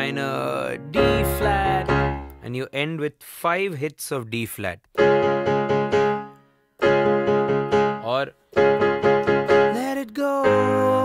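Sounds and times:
person singing along: 0.0s - 2.4s, 9.6s - 11.0s
digital piano chords: 0.0s - 2.7s, 5.0s - 11.0s.

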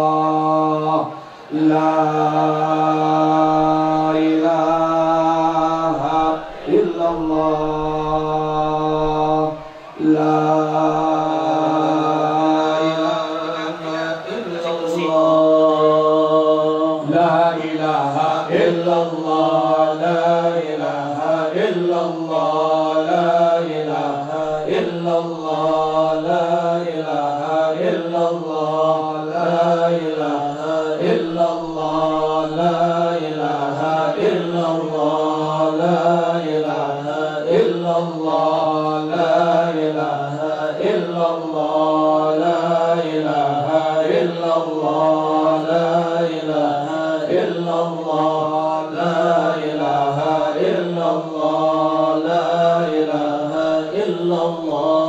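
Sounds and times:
men chanting over microphones: 0.0s - 55.0s.

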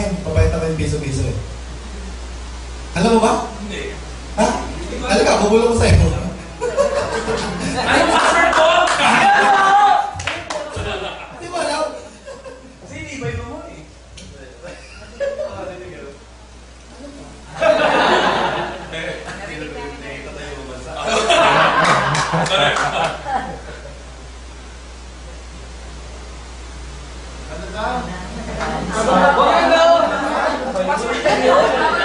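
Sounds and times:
people talking: 0.0s - 2.2s, 3.0s - 12.1s, 12.8s - 16.3s, 16.9s - 23.9s, 27.4s - 32.0s
people chuckling: 6.4s - 12.8s, 14.6s - 15.8s, 17.5s - 19.8s, 21.0s - 24.1s, 28.4s - 32.0s.

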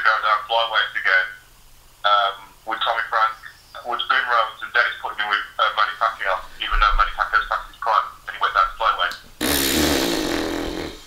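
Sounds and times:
man blowing a raspberry: 9.4s - 11.0s.

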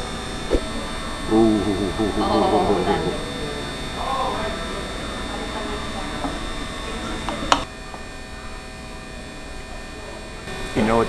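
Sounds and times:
faint voices: 0.0s - 11.0s
steady electrical hum: 0.0s - 11.0s.

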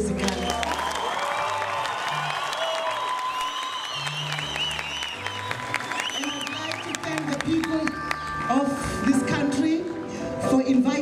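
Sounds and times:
audience applause: 0.0s - 9.0s
cheering and wavering cries: 0.6s - 7.0s, 7.6s - 9.2s.

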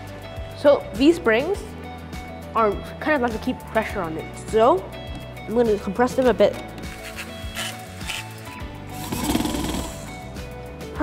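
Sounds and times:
background music: 0.0s - 11.0s
electric screwdriver running: 9.0s - 10.0s.

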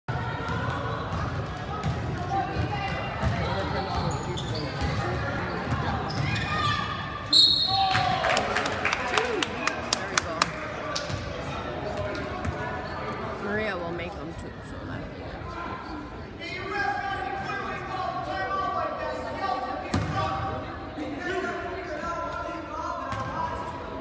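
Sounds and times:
spectators chattering: 0.1s - 24.0s
referee's whistle: 7.3s - 8.0s.

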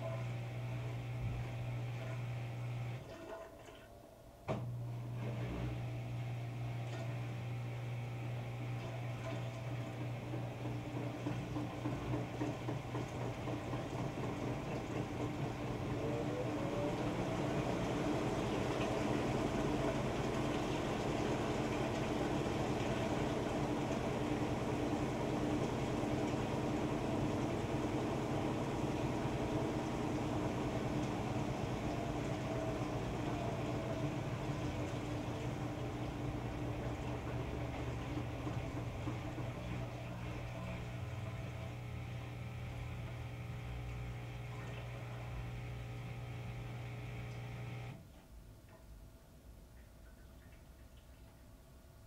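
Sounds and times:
washing machine motor whine: 0.0s - 48.1s
steady hum: 13.6s - 48.0s.

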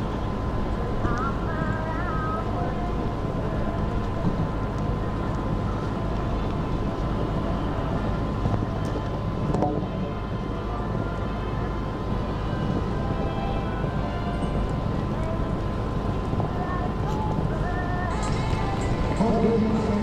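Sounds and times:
low rumbling background noise: 0.0s - 20.0s.

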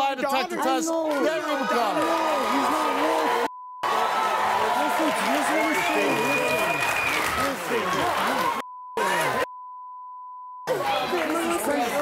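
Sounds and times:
audience applauding: 1.1s - 8.6s
loud voices shouting: 1.1s - 9.4s.

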